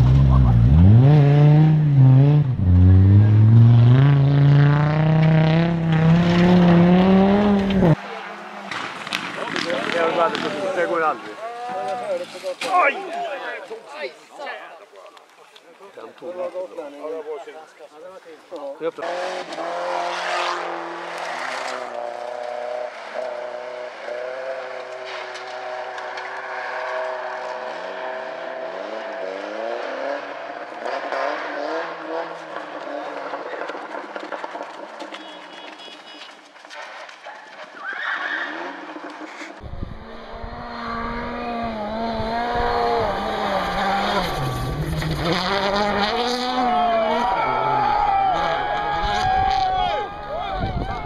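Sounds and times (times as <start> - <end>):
rally car engines revving: 0.0 - 12.9, 18.8 - 35.7, 38.2 - 51.0.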